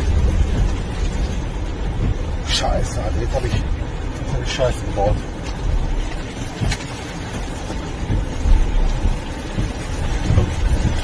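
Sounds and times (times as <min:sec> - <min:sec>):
low rumble of car in floodwater: 0:00.0 - 0:11.0.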